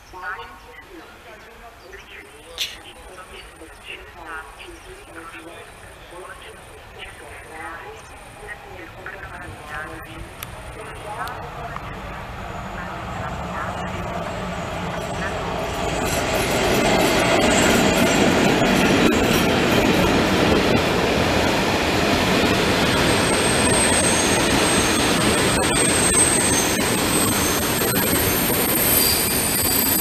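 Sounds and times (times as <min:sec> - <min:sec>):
train wheels on rails: 0:10.0 - 0:30.0
high wheel squeal: 0:23.1 - 0:30.0.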